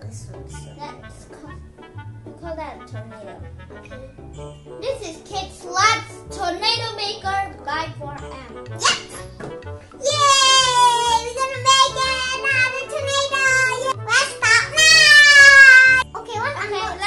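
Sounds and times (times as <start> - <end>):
children's music: 0.0 - 17.0
children cheering: 10.0 - 12.6, 14.5 - 16.0.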